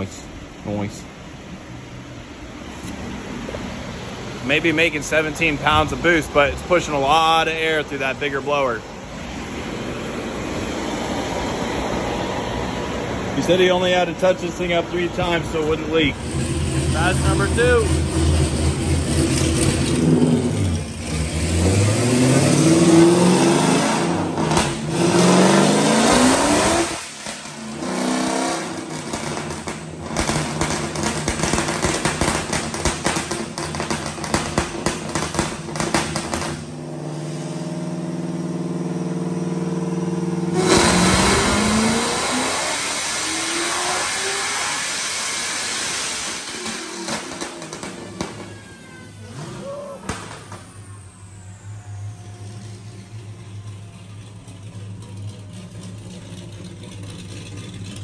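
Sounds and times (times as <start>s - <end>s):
engine revving on dyno: 4.5s - 53.8s
falling whine: 40.4s - 56.0s.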